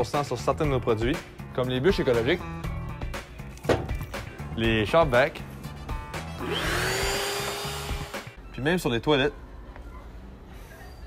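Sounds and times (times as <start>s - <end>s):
vacuum cleaner motor whine: 6.4s - 8.2s.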